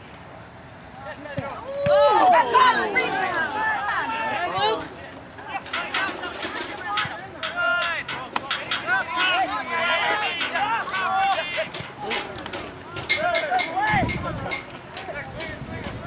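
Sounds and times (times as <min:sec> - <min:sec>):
crowd shouting and cheering: 0:01.4 - 0:16.0.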